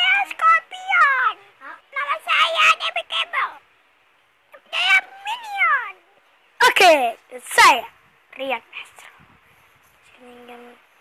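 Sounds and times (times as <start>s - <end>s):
child speaking: 0.0s - 3.6s, 4.5s - 9.1s, 10.1s - 10.9s.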